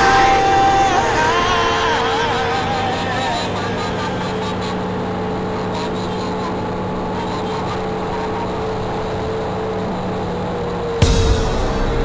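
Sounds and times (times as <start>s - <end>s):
bus engine drone: 0.0s - 12.0s.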